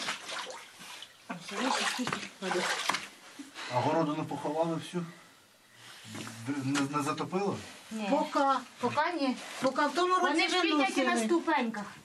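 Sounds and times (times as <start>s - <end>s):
woman talking: 1.3s - 2.8s, 7.9s - 12.0s.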